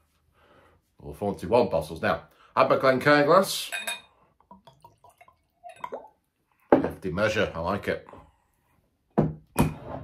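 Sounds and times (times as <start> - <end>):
liquid pouring into glass: 3.8 - 6.5.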